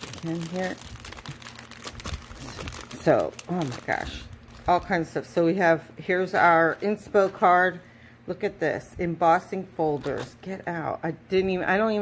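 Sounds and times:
plastic packaging crinkling: 0.0s - 5.2s.

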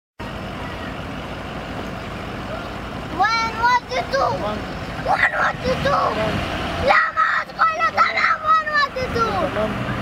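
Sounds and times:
vehicle engine idling: 0.2s - 10.0s
girl shouting: 3.2s - 4.4s, 5.0s - 6.2s, 6.8s - 9.5s.

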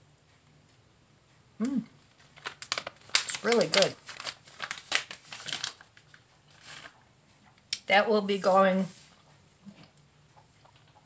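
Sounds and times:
plastic packaging crinkling: 2.1s - 7.0s.

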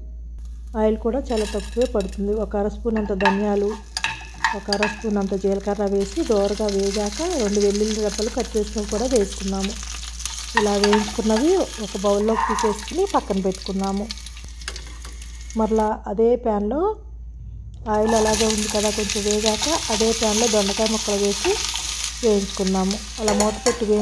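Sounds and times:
spices sizzling in oil: 1.2s - 15.9s, 18.0s - 24.0s.

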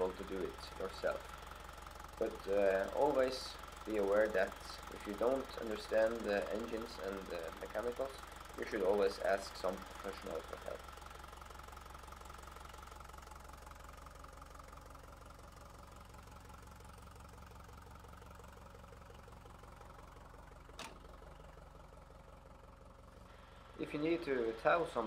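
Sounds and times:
tractor diesel engine idling: 0.0s - 25.0s.

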